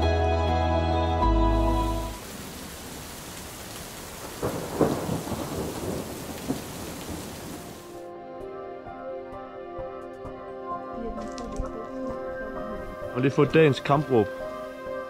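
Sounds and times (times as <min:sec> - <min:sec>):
steady rain falling: 0:01.4 - 0:08.1
thunder rolling: 0:04.1 - 0:07.9
thunder crack: 0:04.2 - 0:07.8.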